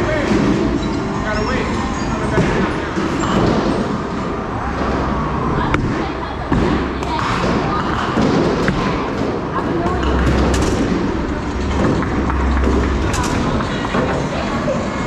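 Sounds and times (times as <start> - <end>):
bowling ball rolling: 6.8 - 15.0
knocks and clatter: 7.4 - 14.5.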